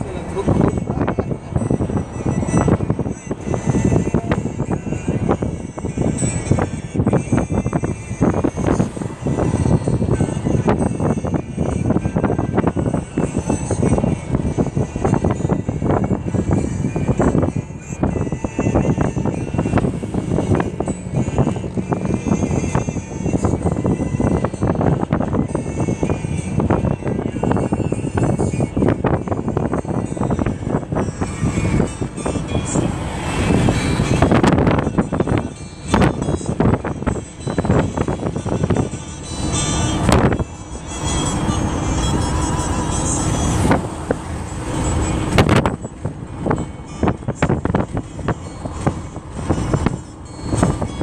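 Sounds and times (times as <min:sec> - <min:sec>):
music playing: 0:00.0 - 0:51.0
road and engine noise: 0:00.0 - 0:51.0.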